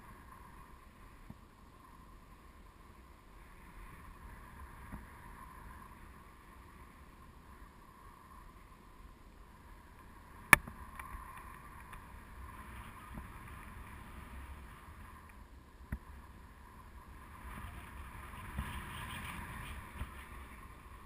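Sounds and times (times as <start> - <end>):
wind rushing over microphone: 0.0 - 21.0.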